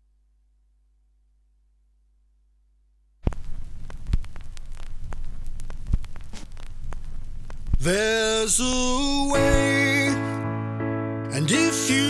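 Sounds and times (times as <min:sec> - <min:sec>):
vinyl pops: 0:03.2 - 0:09.6
vinyl crackle and hiss: 0:03.2 - 0:09.9.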